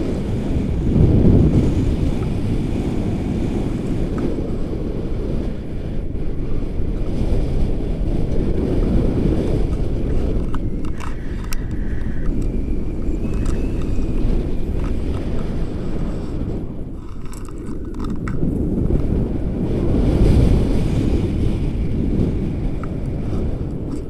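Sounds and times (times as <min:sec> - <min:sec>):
wind buffeting microphone: 0:00.0 - 0:24.0
sharp clicks: 0:09.7 - 0:15.5.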